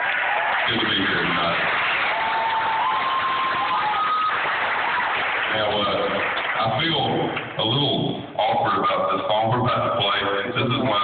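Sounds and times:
audience applauding and cheering: 0:00.0 - 0:07.6.

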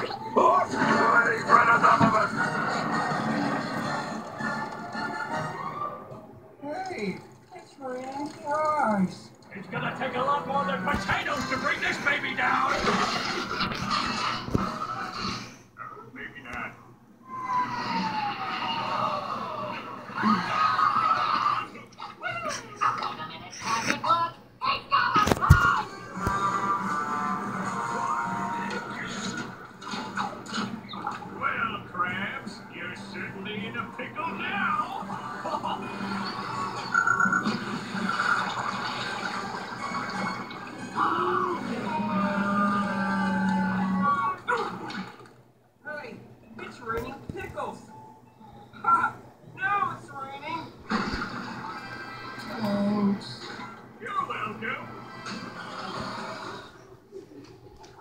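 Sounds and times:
cartoon soundtrack from television: 0:00.0 - 0:58.0.

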